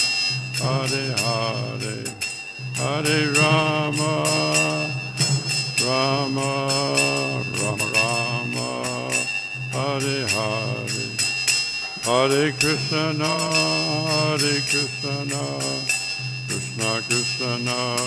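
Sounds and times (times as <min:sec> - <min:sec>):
brass hand cymbals ringing: 0:00.0 - 0:18.0
man singing a chant: 0:00.6 - 0:02.2, 0:02.8 - 0:11.4, 0:12.0 - 0:18.0.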